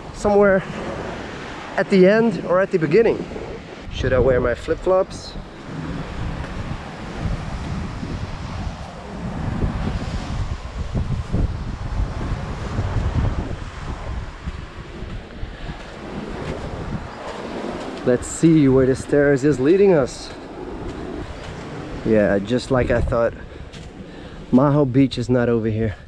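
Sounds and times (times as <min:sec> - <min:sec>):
surf washing on shore: 0:00.0 - 0:25.6
wind buffeting microphone: 0:00.0 - 0:26.0.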